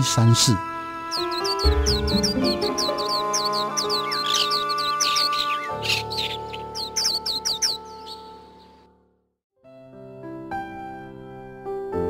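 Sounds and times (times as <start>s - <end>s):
birdsong chirps: 0.0s - 9.0s.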